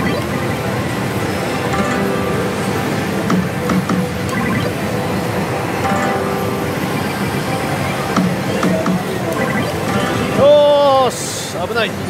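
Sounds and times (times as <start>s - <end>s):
slot machine music and jingles: 0.0s - 11.1s.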